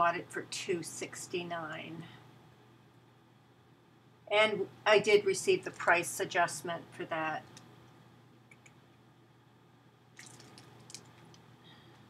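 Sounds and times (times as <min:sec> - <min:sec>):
plastic bag crinkling: 0:10.2 - 0:11.4.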